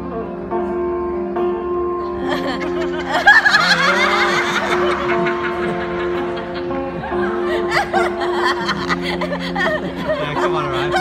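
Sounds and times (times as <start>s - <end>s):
plucked-string music: 0.0s - 11.0s
women laughing and giggling: 2.1s - 11.0s.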